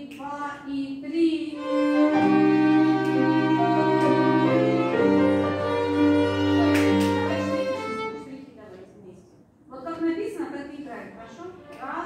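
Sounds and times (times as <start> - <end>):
violins and cello playing: 1.6 - 8.4
woman speaking: 8.1 - 12.0.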